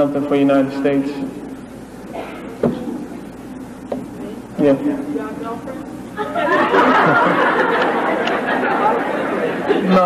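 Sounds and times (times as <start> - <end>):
audience chattering: 2.0 - 10.0.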